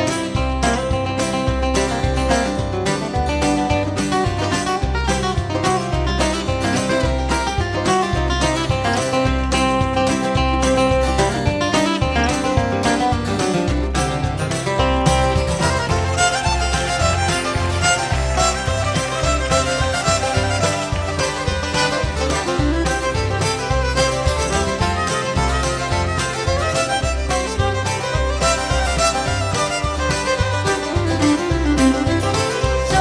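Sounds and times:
bluegrass band playing: 0.0s - 33.0s
fiddle melody: 0.0s - 33.0s.

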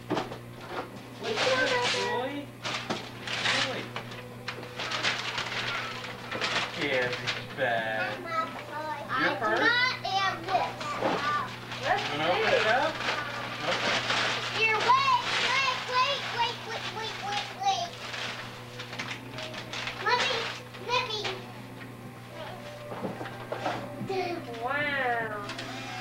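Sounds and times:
wrapping paper rustling: 1.2s - 8.7s, 9.6s - 21.5s, 22.3s - 24.7s.

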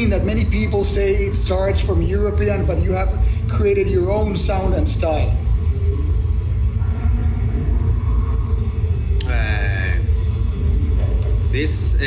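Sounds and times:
deep rumble: 0.0s - 12.0s
faint muffled tones: 0.0s - 12.0s.

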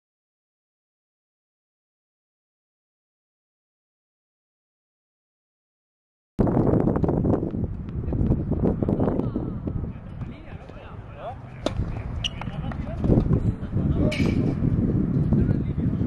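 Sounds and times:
tennis racket hitting ball: 11.6s - 12.6s.

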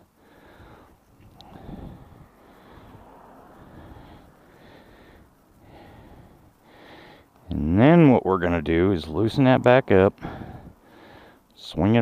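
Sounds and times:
soft breathing: 0.0s - 7.4s, 10.2s - 11.6s.

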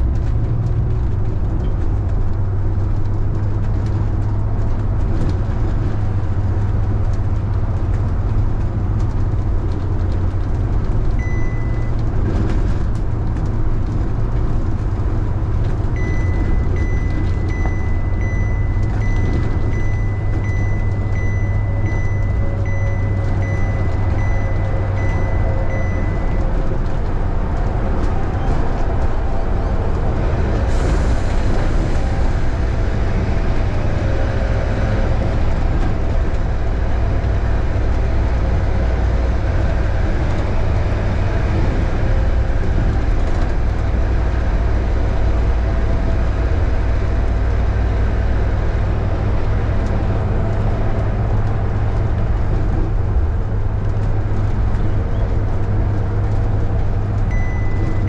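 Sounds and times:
road noise: 0.0s - 58.0s
vehicle engine drone: 0.0s - 58.0s
high electronic beep: 11.2s - 11.9s, 16.0s - 26.5s, 57.3s - 58.0s.

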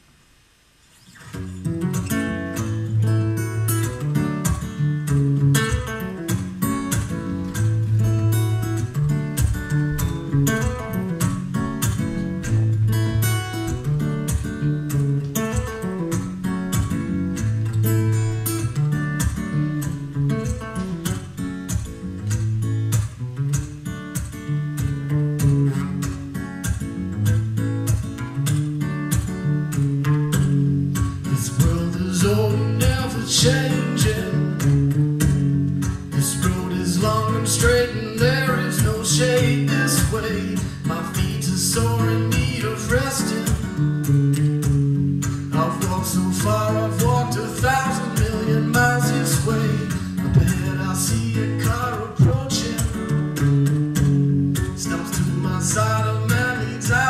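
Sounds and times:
acoustic guitar strumming: 1.0s - 57.0s.

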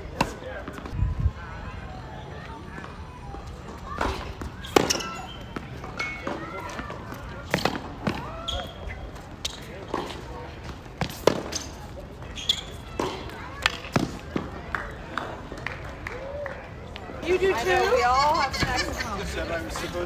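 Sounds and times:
tennis ball struck by racket: 4.0s - 5.2s, 11.0s - 11.8s
voices talking: 16.6s - 20.0s.

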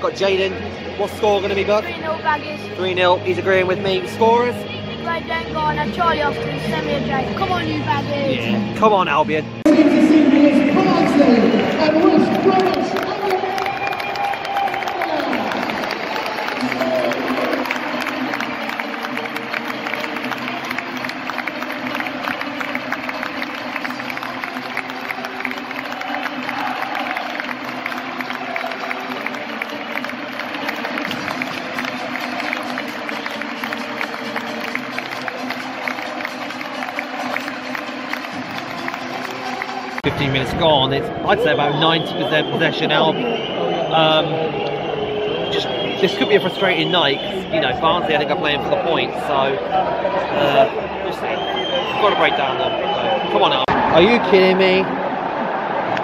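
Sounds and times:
stadium crowd cheering and clapping: 0.0s - 8.8s, 9.6s - 56.0s
music playing: 0.0s - 56.0s.

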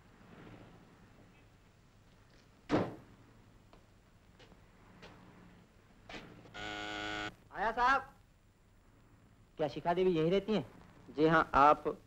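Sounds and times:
doorbell buzzer: 6.6s - 7.3s.

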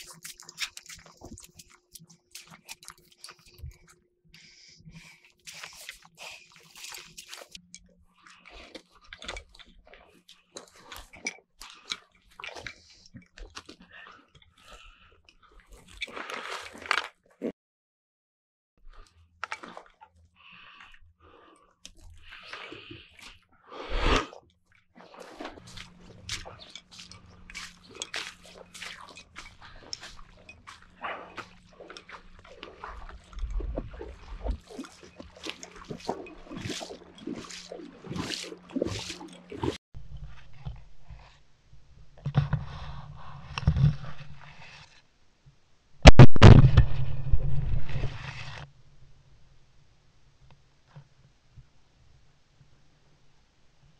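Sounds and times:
sloshing through shallow water: 25.0s - 40.6s
footsteps crunching through dry brush: 25.6s - 33.2s.

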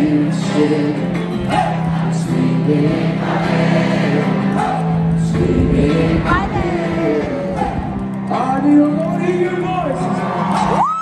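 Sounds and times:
person singing: 0.0s - 9.2s
live folk-rock band: 0.0s - 11.0s.

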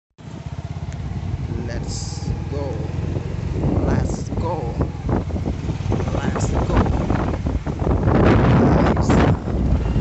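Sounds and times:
motorcycle engine running: 0.2s - 10.0s
wind and road noise: 0.2s - 10.0s.

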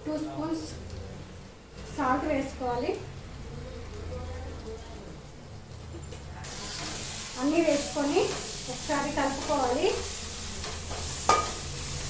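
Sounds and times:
onions sizzling in a pan: 6.4s - 12.0s
spoon clinking against pan: 10.9s - 11.6s.

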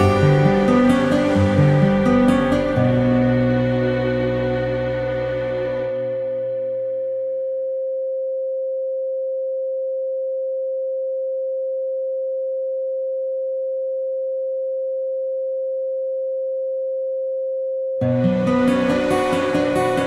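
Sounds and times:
background music: 0.0s - 7.2s, 18.0s - 20.0s
steady sine tone: 0.0s - 20.0s.

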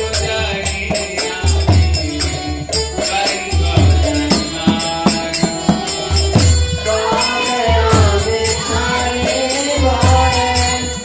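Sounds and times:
hand cymbals: 0.0s - 11.0s
voices singing a chant: 0.0s - 11.0s.

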